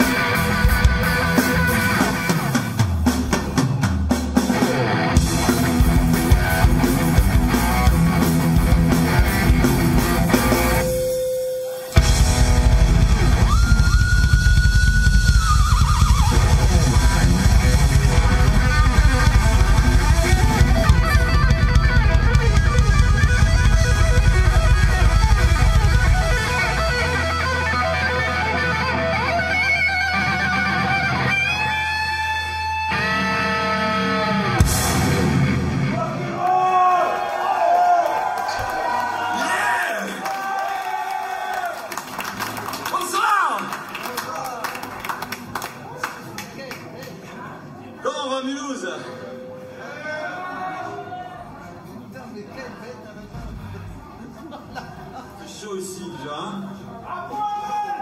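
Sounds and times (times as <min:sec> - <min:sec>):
electric guitar playing lead: 0:00.0 - 0:02.9, 0:04.5 - 0:36.3
bass guitar: 0:00.0 - 0:03.8, 0:04.4 - 0:11.2, 0:12.0 - 0:36.4
drums: 0:00.0 - 0:39.6, 0:53.2 - 0:54.7.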